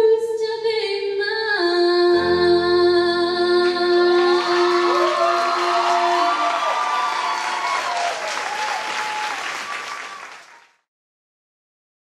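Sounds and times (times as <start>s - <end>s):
held music chord: 2.2s - 4.2s
audience applauding: 4.0s - 10.8s
crowd calling out: 4.2s - 10.4s.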